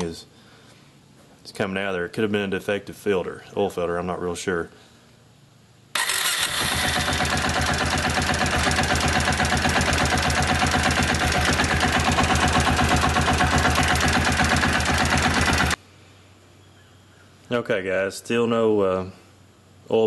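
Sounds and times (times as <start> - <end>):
atv engine running: 6.0 - 15.8.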